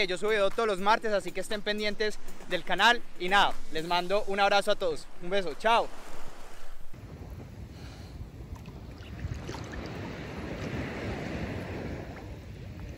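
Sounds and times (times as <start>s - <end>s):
wind rumbling on microphone: 1.6s - 12.9s
sea water lapping: 1.8s - 7.5s, 8.2s - 12.9s.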